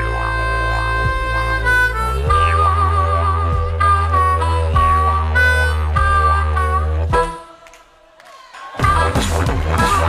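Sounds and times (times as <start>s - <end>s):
deep didgeridoo drone: 0.0s - 7.2s
low beat: 0.0s - 7.5s, 8.8s - 10.0s
harmonica melody: 0.0s - 7.8s.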